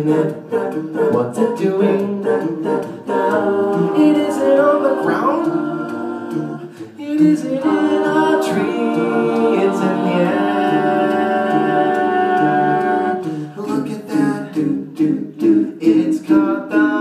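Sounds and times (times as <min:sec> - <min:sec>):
a cappella group singing harmony: 0:00.0 - 0:17.0.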